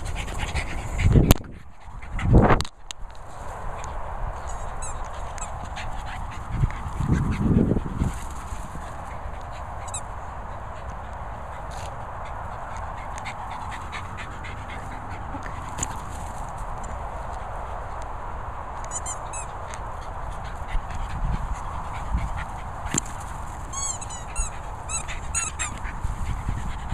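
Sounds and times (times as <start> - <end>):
squeaky toy squeaking: 18.9 - 19.5, 23.7 - 25.8.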